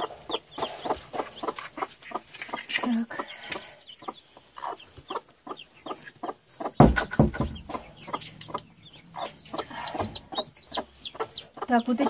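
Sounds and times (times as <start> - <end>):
chicks peeping: 0.0 - 12.0
hen clucking: 0.0 - 12.0
loud thump: 6.8 - 7.7.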